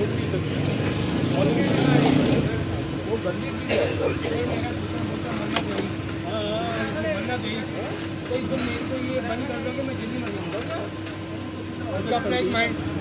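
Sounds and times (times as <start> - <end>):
traffic: 0.0 - 13.0.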